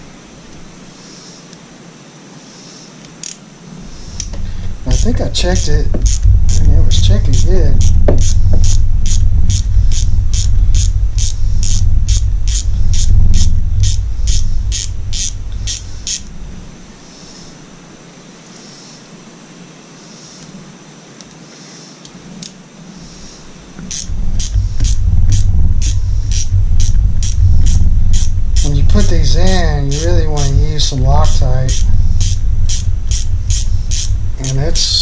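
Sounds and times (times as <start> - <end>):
low rumble: 4.2 - 16.9, 23.8 - 35.0.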